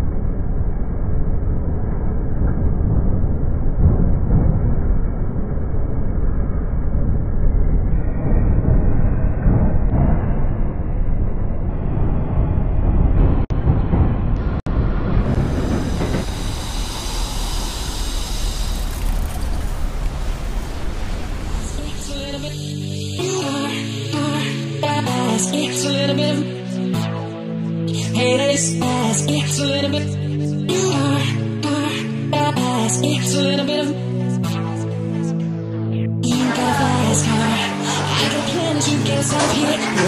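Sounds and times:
train rumbling over bridge: 8.2 - 19.2.

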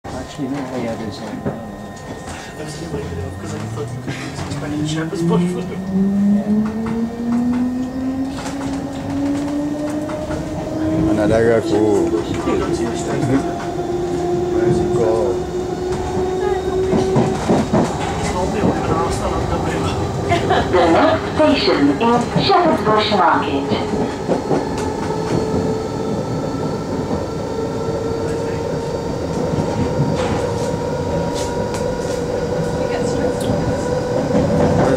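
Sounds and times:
traction motors whining: 0.1 - 34.9
train running rumble: 0.1 - 34.9.

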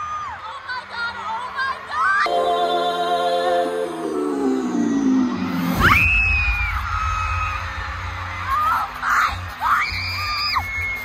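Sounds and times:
live concert music: 2.3 - 11.0
crowd screaming: 3.8 - 11.0.

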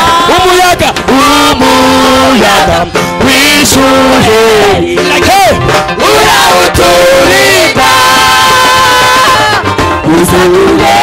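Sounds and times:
congregation singing: 1.1 - 11.0.

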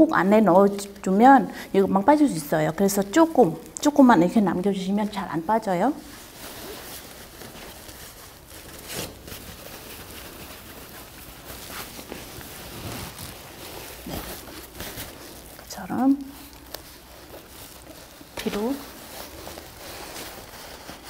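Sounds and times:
fabric rustling: 0.0 - 21.0.

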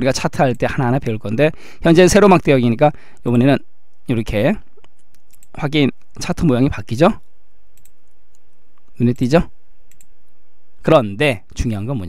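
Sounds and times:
faint steady hum: 0.0 - 12.0
computer mouse clicks: 4.6 - 6.2, 7.2 - 9.3, 9.9 - 10.2.

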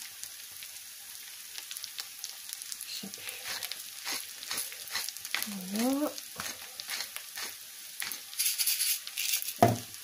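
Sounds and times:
vegetables sizzling in a frying pan: 0.0 - 10.0.

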